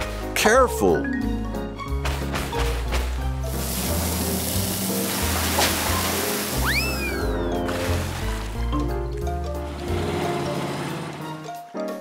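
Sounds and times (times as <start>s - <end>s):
bouncy background music: 0.0s - 12.0s
cartoon water spray hiss: 3.5s - 7.2s
swooping whistle: 6.6s - 7.8s.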